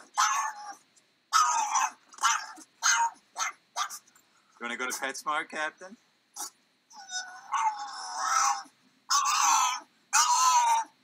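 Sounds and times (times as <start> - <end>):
dog yelping: 0.0 - 4.1, 6.4 - 11.0.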